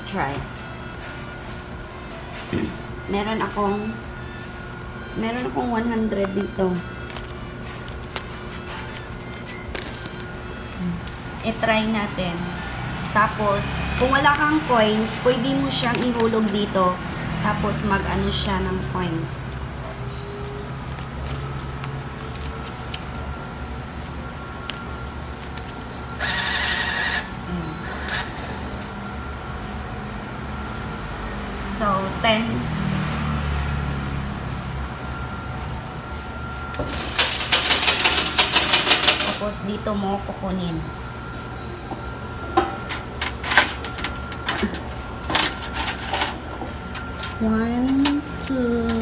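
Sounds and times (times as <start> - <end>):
bill acceptor motor: 0.0 - 49.0
low machine hum: 0.0 - 49.0
coins clinking in metal tray: 37.0 - 39.4.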